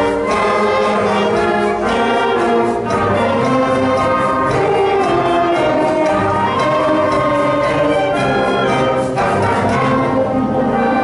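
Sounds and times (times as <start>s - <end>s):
concert band playing held chords: 0.0s - 11.0s.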